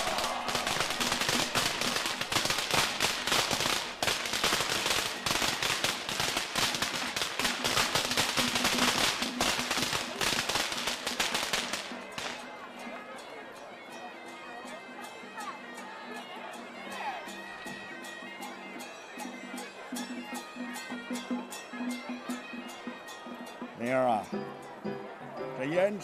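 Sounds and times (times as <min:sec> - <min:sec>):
firecrackers crackling: 0:00.0 - 0:12.4.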